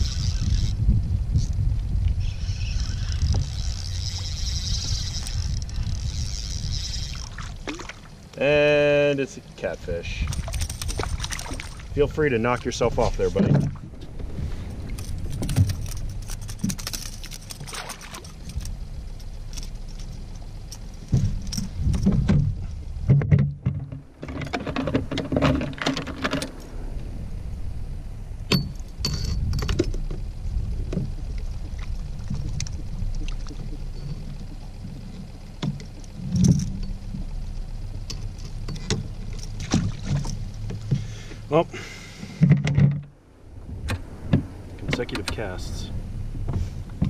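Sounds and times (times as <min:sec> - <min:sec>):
steady low rumble: 0:00.0 - 0:47.0
fishing gear knocking and rattling: 0:02.4 - 0:08.0, 0:10.2 - 0:26.7, 0:28.5 - 0:41.4, 0:42.4 - 0:43.1.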